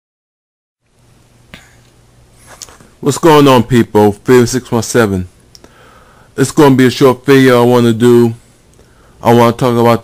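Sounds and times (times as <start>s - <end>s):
low steady hum: 0.8s - 10.0s.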